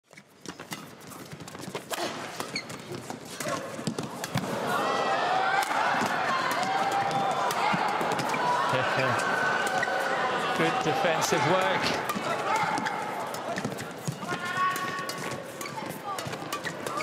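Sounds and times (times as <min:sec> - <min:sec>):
shoes squeaking on court: 0:00.1 - 0:04.3, 0:09.3 - 0:10.1, 0:11.8 - 0:17.0
crowd noise: 0:02.1 - 0:17.0.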